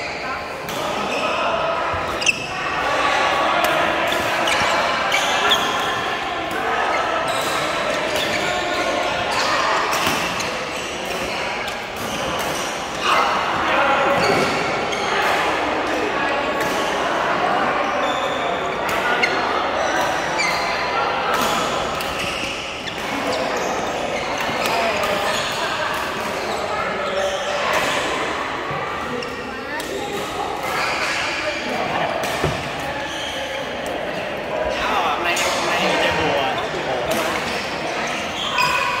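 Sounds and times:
people talking and calling: 0:00.0 - 0:39.0.

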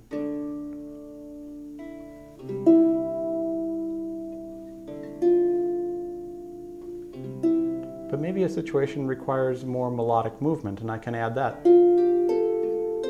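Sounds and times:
harp plucked chords: 0:00.0 - 0:13.0.

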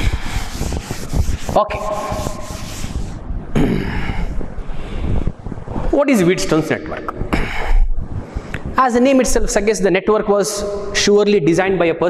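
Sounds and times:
duster rubbing chalkboard: 0:00.0 - 0:03.2.

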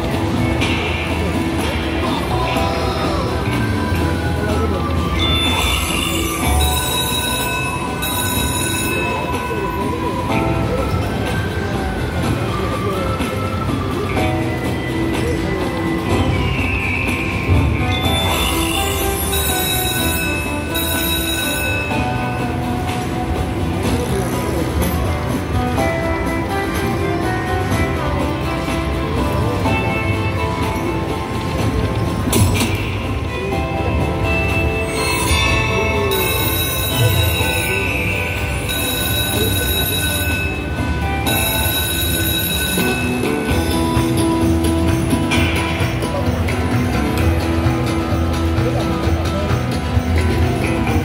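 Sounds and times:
slot machine electronic tones: 0:00.0 - 0:48.6
low casino rumble: 0:00.0 - 0:51.0.

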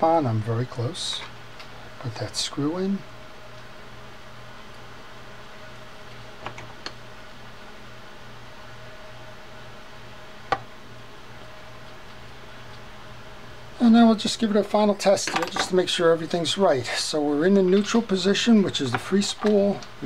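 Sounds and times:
low background hum: 0:00.0 - 0:20.0.

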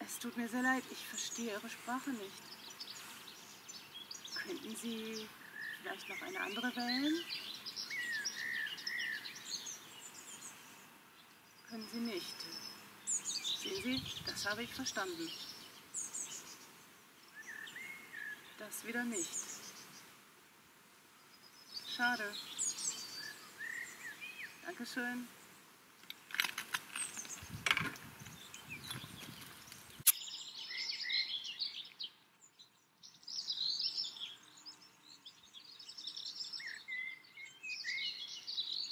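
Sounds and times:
songbirds chirping and whistling: 0:00.0 - 0:20.1, 0:21.2 - 0:38.9
sharp loud click: 0:30.0 - 0:30.3.

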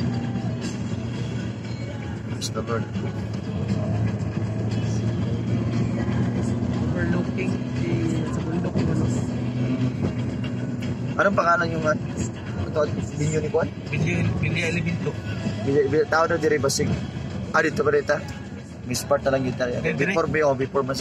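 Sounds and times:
car engine drone: 0:00.0 - 0:21.0
road noise: 0:00.0 - 0:21.0.

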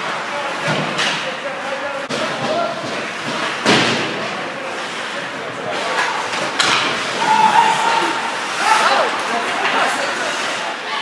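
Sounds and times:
murmur of voices: 0:00.0 - 0:11.0
puck and sticks knocking boards: 0:02.0 - 0:04.2, 0:06.0 - 0:07.3.

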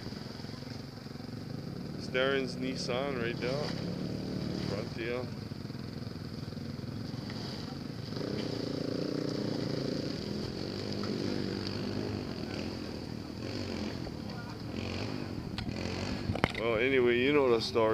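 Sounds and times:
truck engine revving: 0:01.4 - 0:05.5, 0:06.2 - 0:17.2.

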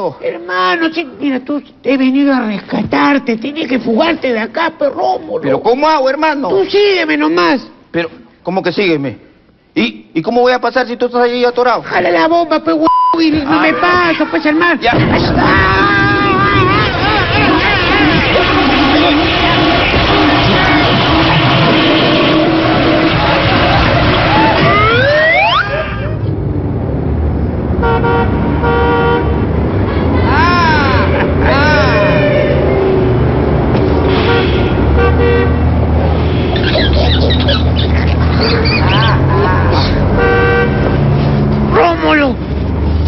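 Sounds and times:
traffic background: 0:11.1 - 0:43.0
car horn toots: 0:16.9 - 0:25.6, 0:27.8 - 0:29.4, 0:34.0 - 0:35.8, 0:40.1 - 0:41.1
low steady horn tone: 0:27.8 - 0:29.4, 0:34.1 - 0:35.7, 0:40.2 - 0:41.2
short horn toot: 0:34.0 - 0:35.6.

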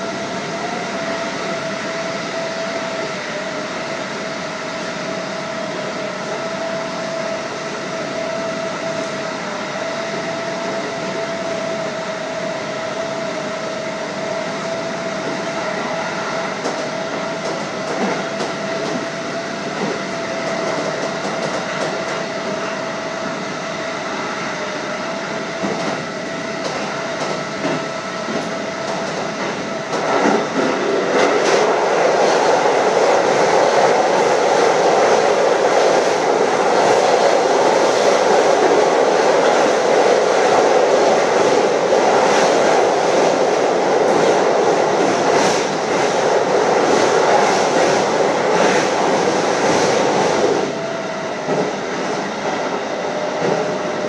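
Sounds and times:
train rumbling over steel bridge: 0:00.0 - 0:54.0
train wheels on rail: 0:00.0 - 0:54.0.

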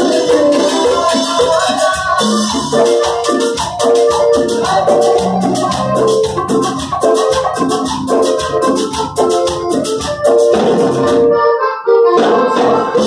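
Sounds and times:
fast percussion rattle: 0:00.0 - 0:11.2
bass: 0:00.0 - 0:13.0
keyboard melody: 0:00.0 - 0:13.0.

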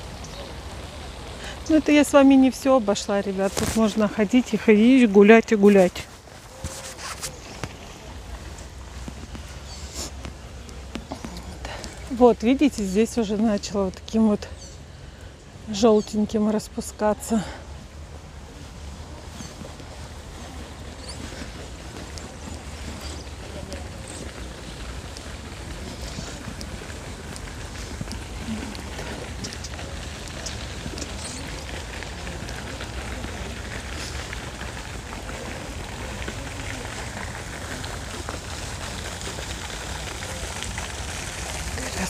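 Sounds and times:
fountain water splashing: 0:00.0 - 0:42.0.

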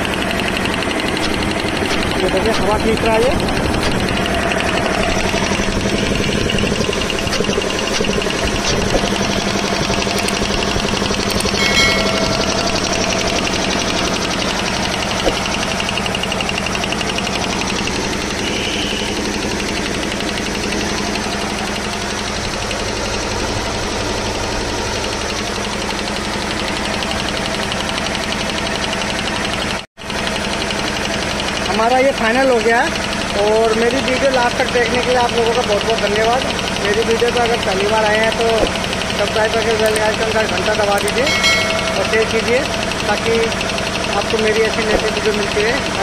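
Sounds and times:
low hum: 0:00.0 - 0:28.3
piston air compressor running: 0:00.0 - 0:46.0.

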